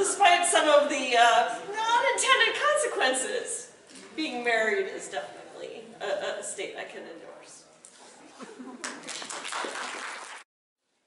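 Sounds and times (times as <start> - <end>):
audience applauding: 8.8 - 10.5.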